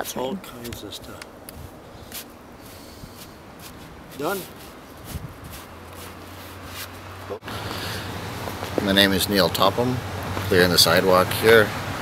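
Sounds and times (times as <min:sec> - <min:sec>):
push broom sweeping snow: 0:02.0 - 0:07.0.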